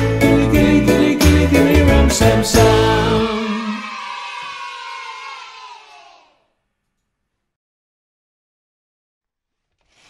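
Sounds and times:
children's dance song: 0.0 - 6.4
cartoon voices cheering: 3.1 - 6.4.

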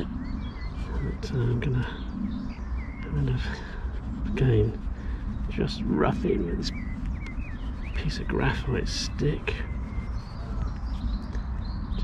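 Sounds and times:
small birds chirping: 0.0 - 12.0
steady low rumble: 0.0 - 12.0.

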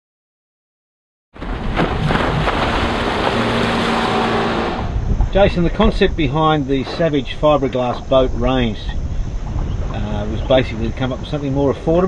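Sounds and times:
rushing water: 1.4 - 5.0
motorboat engine hum: 1.4 - 12.0
wind on microphone: 1.4 - 12.0.

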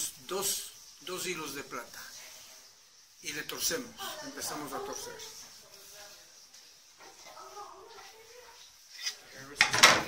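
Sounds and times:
faint indistinct voices: 1.9 - 10.0.

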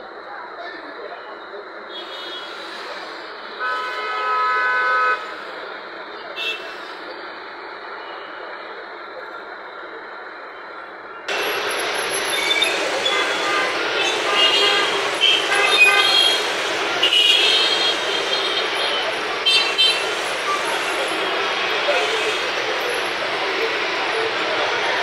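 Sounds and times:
people's voices: 0.0 - 25.0.

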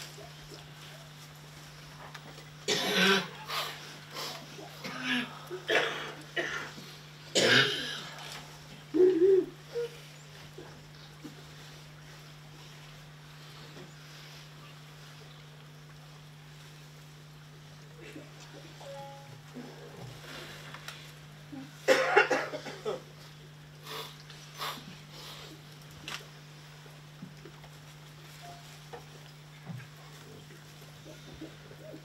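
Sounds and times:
steady low hum: 0.0 - 32.0
person coughing: 2.7 - 3.4, 4.8 - 6.7, 7.4 - 8.1, 21.9 - 23.0.

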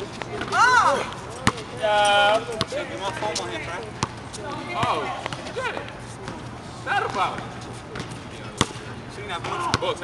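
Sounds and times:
basketball bouncing on asphalt: 0.2 - 1.8, 4.0 - 6.4.

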